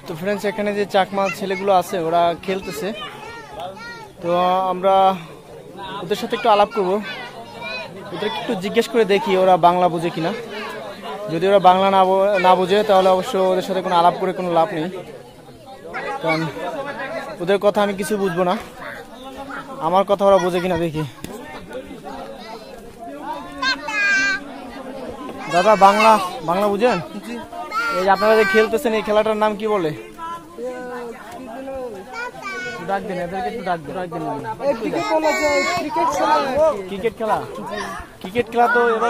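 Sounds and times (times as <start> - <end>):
man talking: 16.0 - 23.8, 24.8 - 32.1, 32.7 - 39.0.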